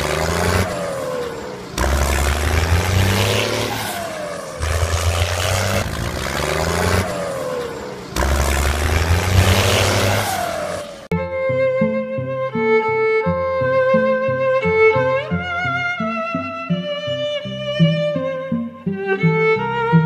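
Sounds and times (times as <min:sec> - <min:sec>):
tractor engine revving: 0:00.0 - 0:11.2.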